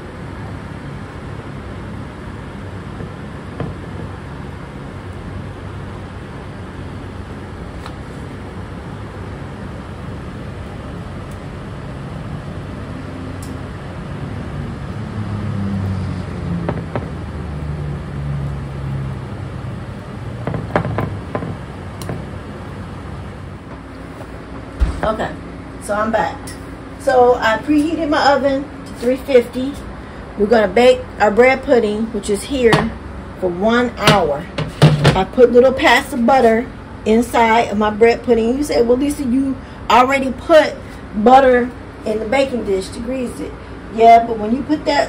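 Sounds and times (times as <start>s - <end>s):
low background hum: 0.0s - 45.0s.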